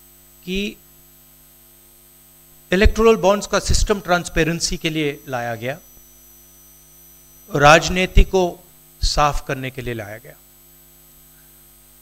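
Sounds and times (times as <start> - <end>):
low electrical hum: 0.0 - 12.0
person speaking a word: 7.5 - 9.2.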